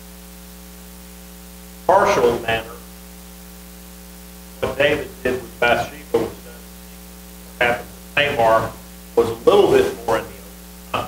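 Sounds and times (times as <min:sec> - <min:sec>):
electrical mains hum: 0:00.0 - 0:11.0
man speaking: 0:01.9 - 0:02.8, 0:04.6 - 0:06.7, 0:07.6 - 0:11.0.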